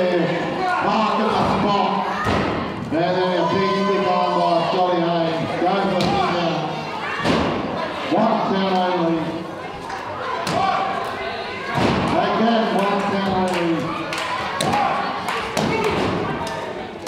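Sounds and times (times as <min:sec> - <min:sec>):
voices shouting: 0:09.8 - 0:16.7.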